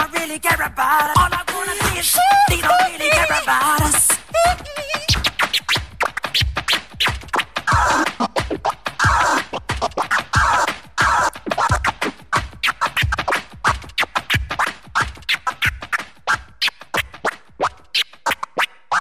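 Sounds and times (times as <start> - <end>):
steady kick drum: 0.0 - 16.3
dj scratching: 0.0 - 19.0
hip-hop beat: 0.0 - 19.0.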